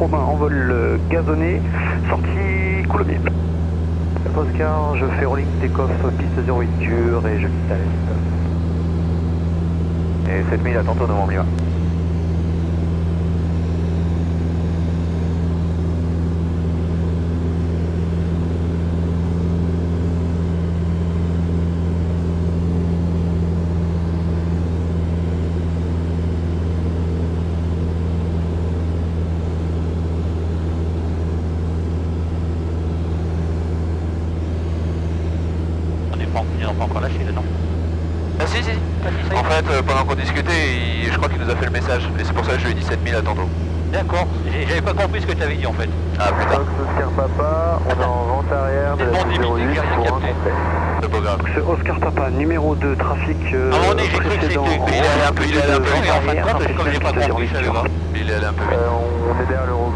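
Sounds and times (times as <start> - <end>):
voices: 0.0 - 3.4, 4.2 - 8.4, 10.2 - 11.6, 36.1 - 37.6, 38.3 - 59.9
light aircraft engine droning: 0.0 - 59.9.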